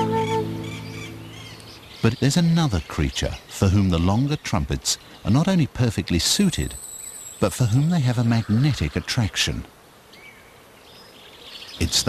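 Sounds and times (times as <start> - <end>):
forest ambience: 0.0 - 12.0.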